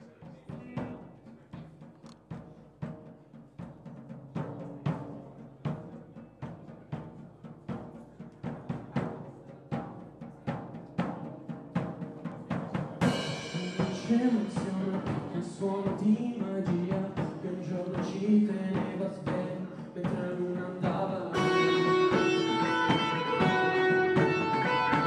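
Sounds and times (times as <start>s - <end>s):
drums steady beat: 0.0s - 25.0s
bass guitar: 21.3s - 25.0s
keyboard notes: 21.3s - 25.0s.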